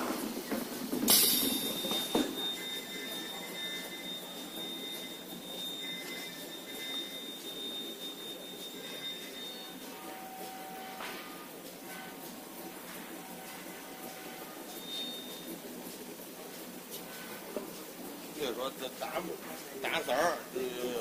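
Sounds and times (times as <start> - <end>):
machine high whine: 0.0 - 16.0.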